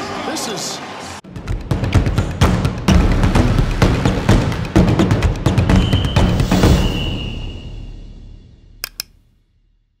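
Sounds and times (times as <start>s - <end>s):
sharp clicks: 8.8s - 9.2s.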